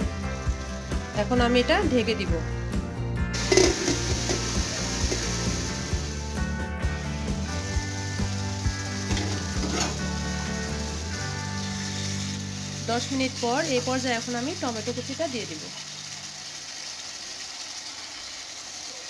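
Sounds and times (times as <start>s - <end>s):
filling sizzling in a wok: 0.0s - 2.2s, 3.3s - 19.0s.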